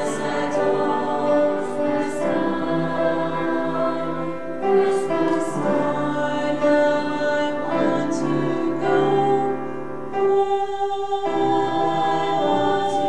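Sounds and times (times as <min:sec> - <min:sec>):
mixed choir singing: 0:00.0 - 0:13.0.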